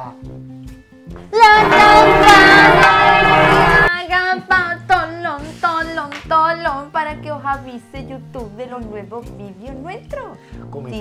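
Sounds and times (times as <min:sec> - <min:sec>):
background music: 0:00.0 - 0:11.0
woman singing out: 0:01.3 - 0:06.8
sung tune: 0:01.4 - 0:03.9.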